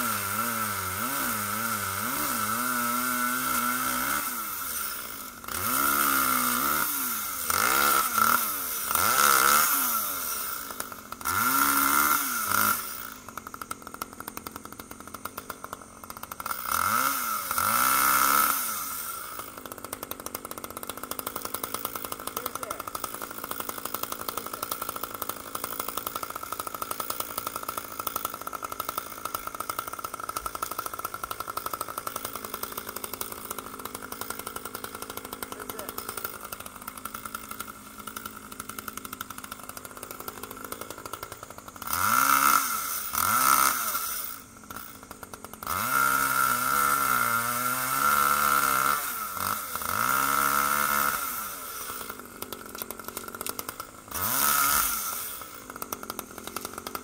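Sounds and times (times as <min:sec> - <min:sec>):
chainsaw revving: 0:00.0 - 0:57.0
two-stroke chainsaw idling: 0:00.0 - 0:57.0.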